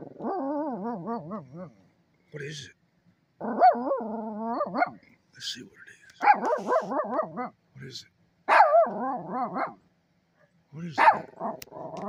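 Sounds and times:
small dog yodelling bark-howl: 0.0 - 1.8, 3.4 - 5.0, 6.2 - 7.6, 8.5 - 9.8, 11.0 - 12.0.

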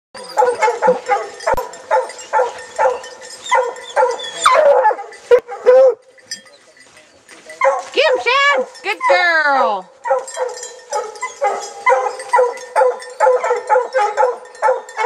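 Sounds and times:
hound barking: 0.2 - 6.6, 7.5 - 9.3, 9.9 - 15.0.

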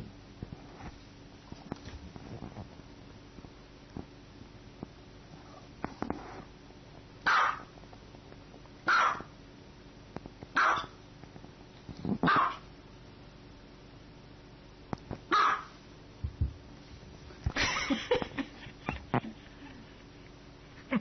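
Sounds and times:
small dog barking: 7.2 - 7.7, 8.8 - 9.3, 10.5 - 11.0, 12.2 - 12.7, 15.3 - 15.8.

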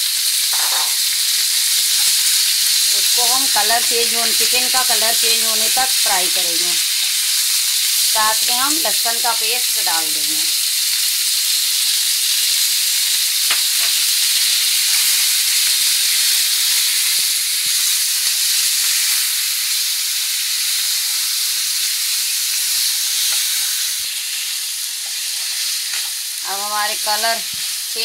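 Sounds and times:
meat sizzling in frying pan: 0.0 - 28.0.

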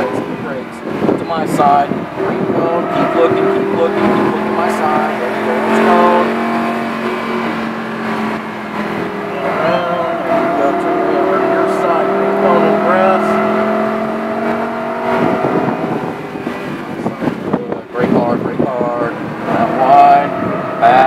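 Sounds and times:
car engine from inside cabin: 0.3 - 21.0.

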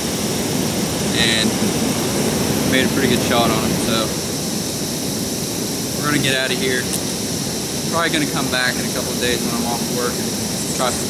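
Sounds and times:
water rushing: 0.0 - 11.0.

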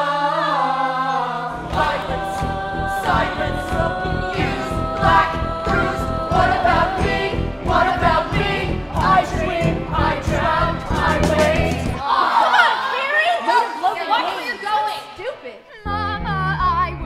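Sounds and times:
ensemble singing in chorus: 0.0 - 12.6
backing band with driving beat: 1.7 - 12.0.

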